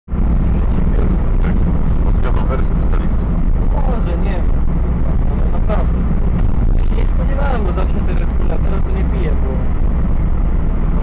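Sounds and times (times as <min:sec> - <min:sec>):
car engine and road rumble: 0:00.0 - 0:11.0.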